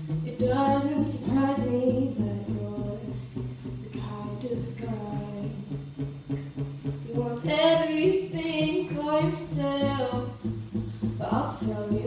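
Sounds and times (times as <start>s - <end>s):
acoustic guitar strumming: 0.0s - 12.0s
girl singing a slow ballad: 0.2s - 3.2s, 3.8s - 5.7s, 7.1s - 10.3s, 11.2s - 12.0s.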